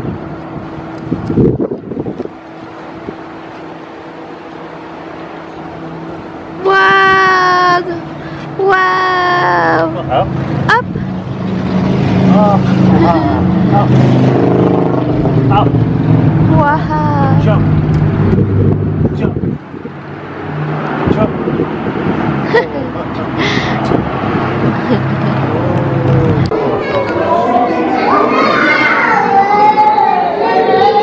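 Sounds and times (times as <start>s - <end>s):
car engine running: 9.8s - 26.6s
toddler squealing and babbling: 28.0s - 31.0s.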